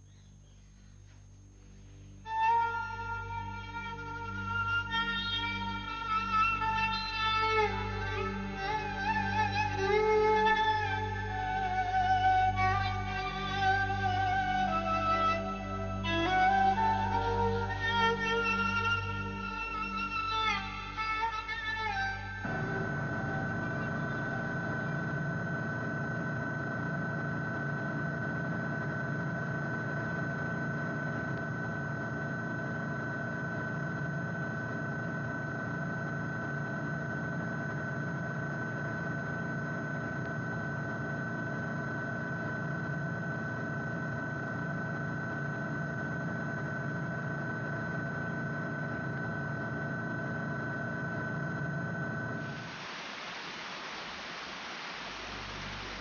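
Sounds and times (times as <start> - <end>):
mechanical drone with high whine: 0.0 - 56.0
soft even hiss: 0.1 - 3.2, 52.4 - 56.0.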